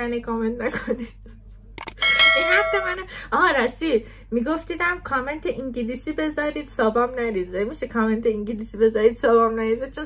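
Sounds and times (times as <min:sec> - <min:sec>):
button click: 0:01.8 - 0:02.1
bell-like ding: 0:02.0 - 0:03.1.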